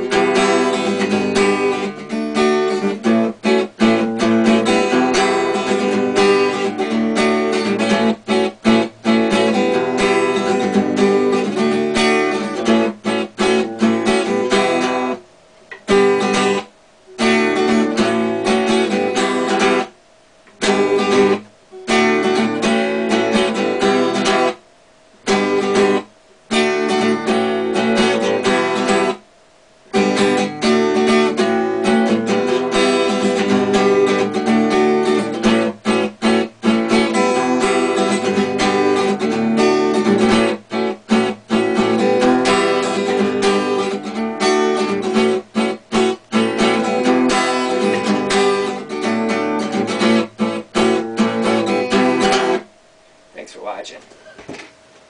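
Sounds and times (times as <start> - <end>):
acoustic guitar riff: 0.0 - 54.6.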